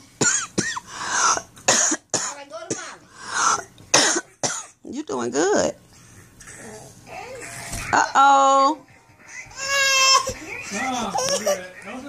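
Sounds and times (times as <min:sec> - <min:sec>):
person coughing: 0:04.0 - 0:04.7.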